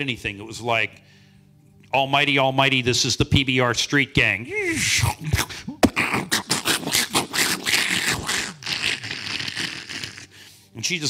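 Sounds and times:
man making mouth sound effects: 0:04.5 - 0:10.4
vocal low rumbling: 0:05.0 - 0:10.3.

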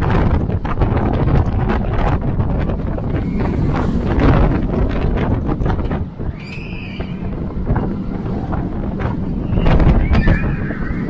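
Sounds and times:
roller coaster train rumbling: 0:00.0 - 0:11.0
wind buffeting microphone: 0:00.0 - 0:11.0
riders screaming: 0:06.3 - 0:07.4, 0:09.5 - 0:11.0.

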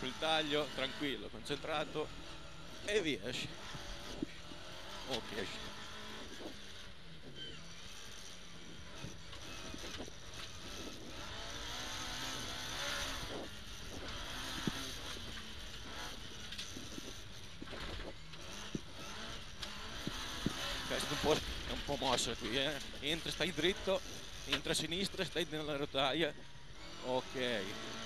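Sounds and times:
rally car engine revving: 0:00.0 - 0:28.0.

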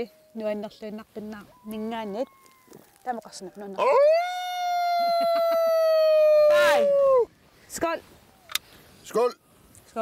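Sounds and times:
person crying out: 0:03.8 - 0:07.3.

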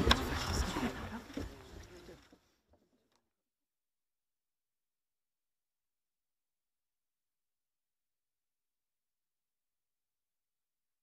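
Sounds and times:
murmur of voices: 0:00.0 - 0:02.4.

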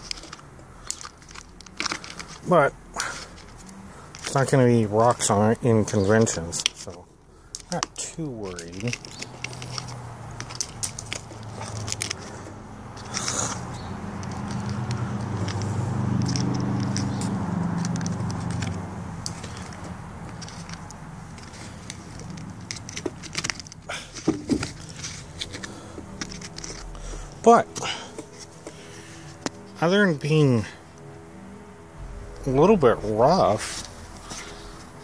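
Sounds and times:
low hum: 0:30.7 - 0:35.0.

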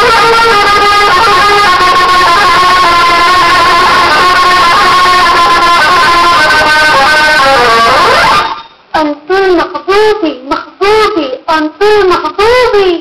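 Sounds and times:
guitar music: 0:00.0 - 0:10.8
high-pitched voice singing: 0:09.0 - 0:13.0.

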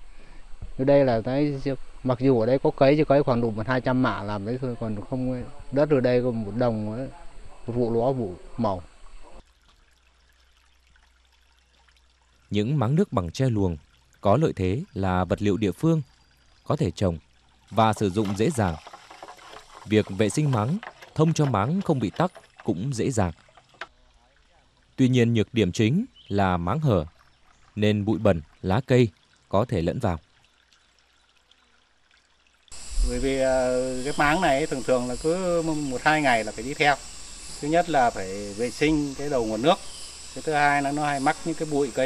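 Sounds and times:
trickle of rocky stream: 0:07.7 - 0:42.0.

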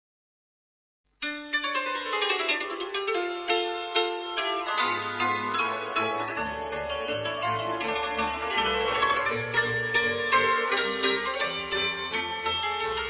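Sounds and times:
cimbalom band music: 0:01.2 - 0:13.0.

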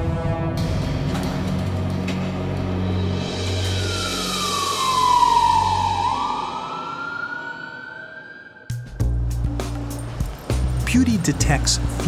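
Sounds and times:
ambulance siren wailing: 0:03.1 - 0:09.3.

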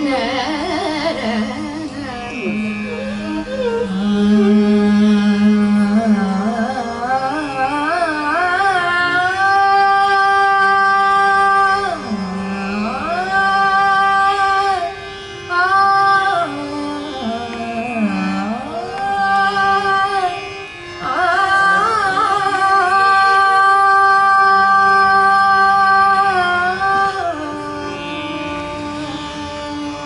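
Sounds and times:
woman singing classical vocal line: 0:00.0 - 0:30.0.

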